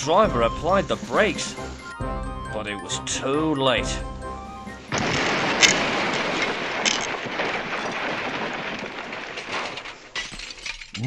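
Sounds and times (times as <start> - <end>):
debris clinking: 4.9 - 11.0
glass shattering: 4.9 - 11.0
vehicle crash: 4.9 - 11.0.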